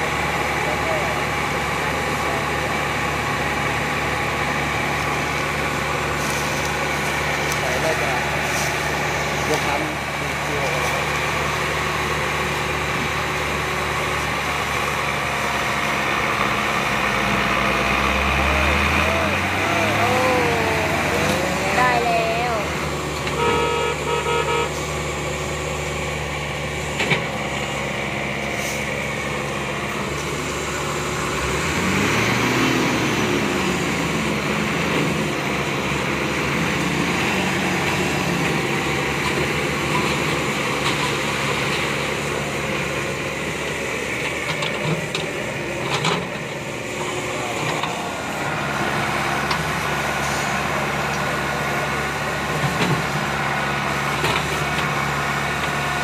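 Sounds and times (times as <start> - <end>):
heavy diesel engines running: 0.0 - 56.0
engine revving up: 10.8 - 25.2, 30.0 - 39.4.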